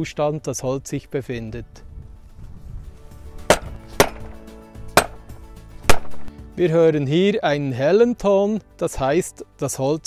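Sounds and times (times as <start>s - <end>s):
hammer knocking on wooden pole: 3.5s - 4.4s, 5.0s - 6.3s.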